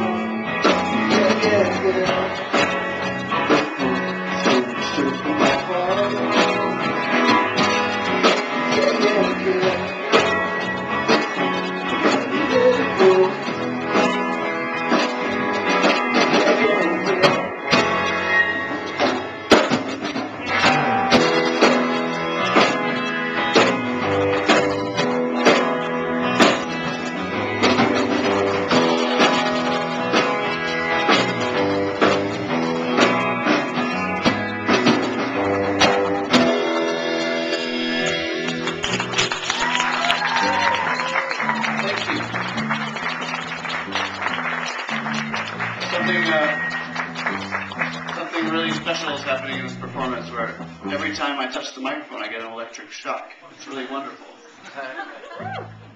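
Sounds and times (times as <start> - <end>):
live rock band playing: 0.0 - 51.6.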